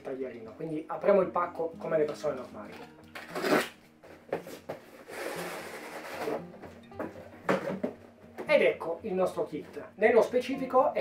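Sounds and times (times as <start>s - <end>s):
box cutter slitting packing tape: 3.2s - 3.8s
cardboard scraping and rustling: 3.2s - 6.5s.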